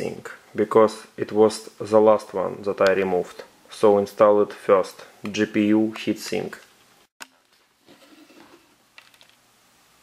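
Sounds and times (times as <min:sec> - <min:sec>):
soft rustling and scraping: 0:07.5 - 0:09.3.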